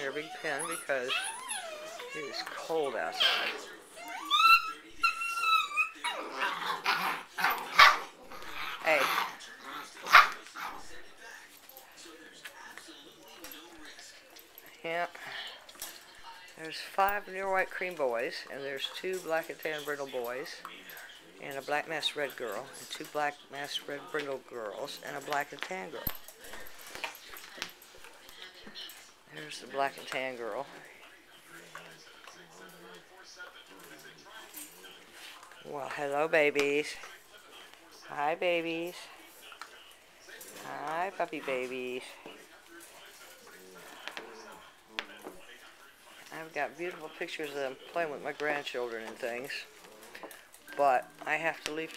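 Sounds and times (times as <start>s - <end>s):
puppies making faint vocal sounds: 0.0s - 48.0s
puppies yipping and barking: 0.1s - 8.7s.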